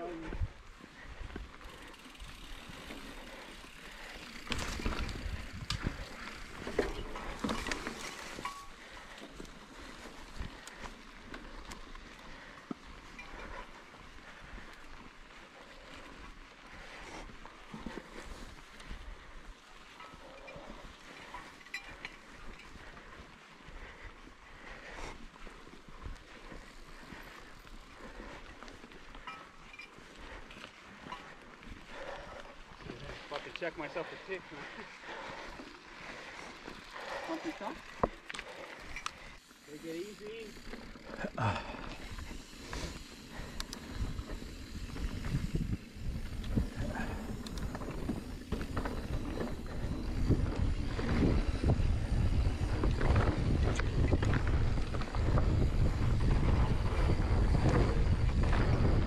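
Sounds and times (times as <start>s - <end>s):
bike clicks and rattles: 0.0s - 59.0s
bike tyres on dirt: 0.0s - 59.0s.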